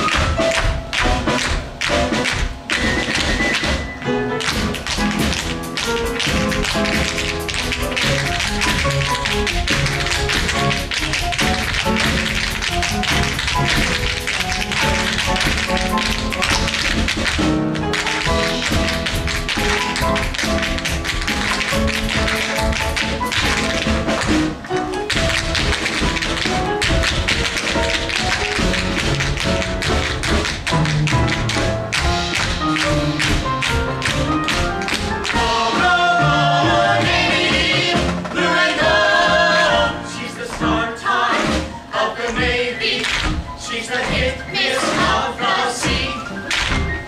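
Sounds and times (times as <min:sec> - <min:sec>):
tap shoes striking stage floor: 0:00.0 - 0:36.0, 0:40.5 - 0:40.8, 0:41.4 - 0:45.2, 0:45.8 - 0:47.0
show tune band playing: 0:00.0 - 0:41.6.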